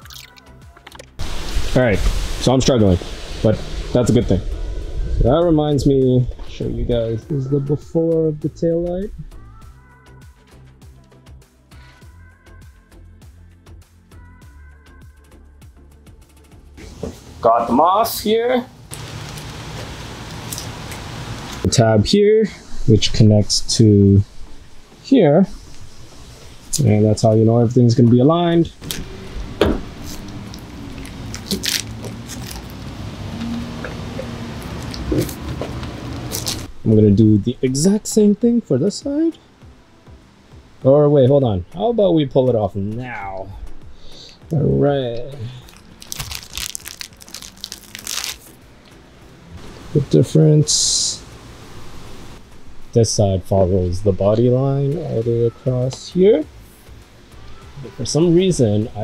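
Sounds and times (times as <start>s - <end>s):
plastic bag rustling: 18.9s - 21.1s, 28.8s - 33.0s, 34.6s - 36.7s, 45.5s - 48.6s
plastic film crinkling: 18.9s - 21.1s, 30.0s - 32.9s, 34.6s - 36.7s, 45.5s - 48.6s.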